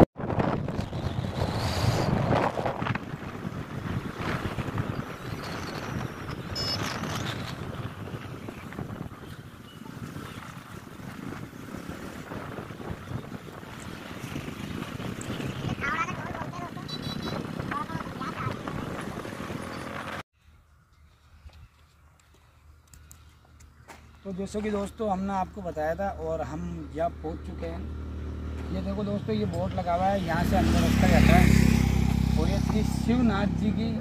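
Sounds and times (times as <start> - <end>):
wind buffeting microphone: 0.0 - 20.2
motorcycle engine: 11.5 - 20.2, 26.6 - 34.0.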